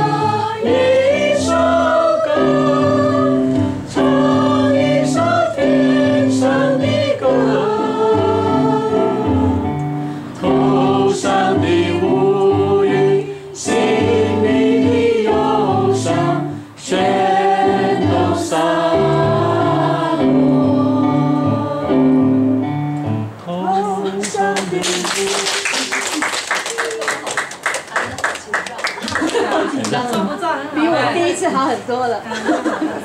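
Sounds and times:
voices singing: 0:00.0 - 0:22.6, 0:23.4 - 0:25.8
digital keyboard chords: 0:00.0 - 0:23.4.

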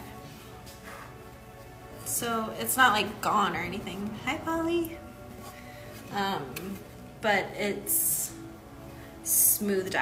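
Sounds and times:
faint background music: 0:00.0 - 0:10.0
woman speaking: 0:02.1 - 0:05.0, 0:06.1 - 0:08.4.

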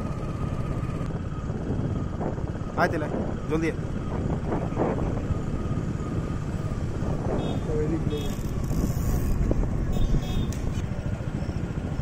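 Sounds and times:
road vehicle running rumble: 0:00.0 - 0:12.0.

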